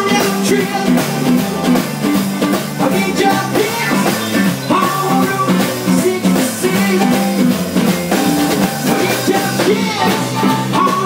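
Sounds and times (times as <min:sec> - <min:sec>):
bass line: 0:00.0 - 0:11.0
drum kit: 0:00.0 - 0:11.0
stage piano: 0:00.0 - 0:11.0.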